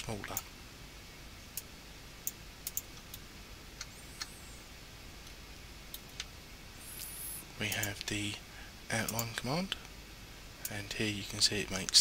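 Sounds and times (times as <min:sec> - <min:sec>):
faint steady hiss: 0:00.0 - 0:12.0
computer mouse clicking: 0:01.6 - 0:03.2.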